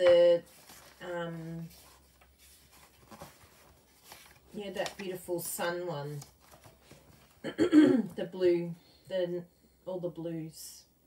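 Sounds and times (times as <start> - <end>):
paper sheets rustling: 0.0 - 7.4
paper brushing: 0.4 - 5.2.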